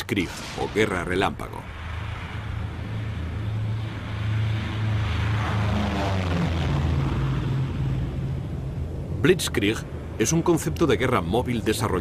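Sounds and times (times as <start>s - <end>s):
falling whine: 0.0s - 12.0s
propeller aircraft engines droning: 0.0s - 12.0s.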